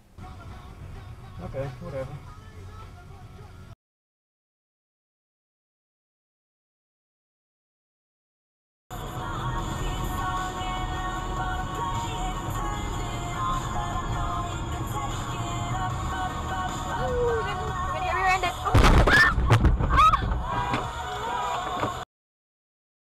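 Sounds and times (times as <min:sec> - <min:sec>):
car rumble: 0:00.0 - 0:03.8, 0:08.9 - 0:22.0
music: 0:00.1 - 0:03.8, 0:08.9 - 0:22.0.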